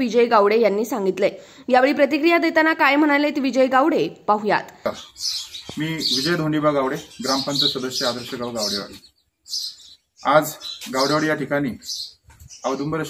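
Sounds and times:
birds chirping: 0.0 - 13.0
men talking: 4.9 - 9.6, 10.2 - 13.0.

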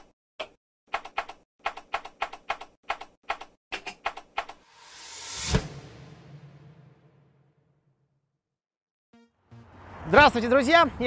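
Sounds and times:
rising whoosh: 4.6 - 7.7.

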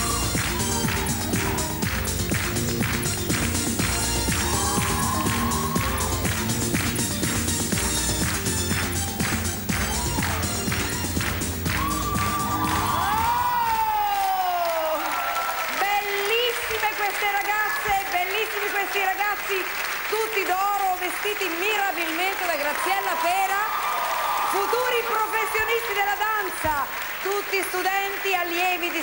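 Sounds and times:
upbeat pop dance music: 0.0 - 14.4, 24.5 - 29.0
audience applauding: 0.0 - 29.0.

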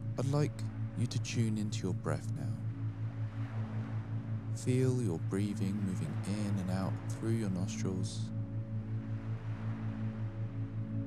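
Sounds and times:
pulsing low hum: 0.0 - 11.0
soft ambient drone: 0.0 - 11.0.

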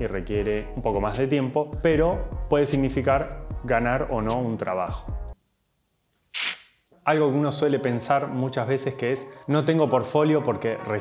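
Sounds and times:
low background music: 0.0 - 5.4, 7.0 - 11.0.

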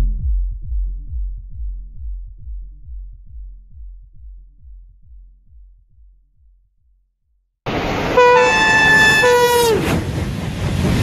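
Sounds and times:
train rumbling: 7.7 - 11.0
two-tone train horn: 8.1 - 9.9.

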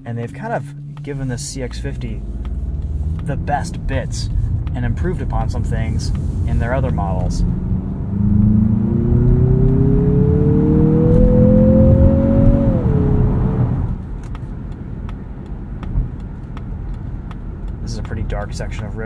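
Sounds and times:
car engine accelerating: 0.0 - 19.0
road and tyre noise: 0.0 - 19.0.

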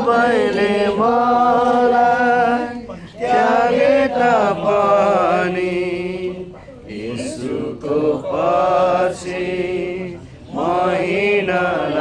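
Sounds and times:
people singing worship song: 0.0 - 12.0.

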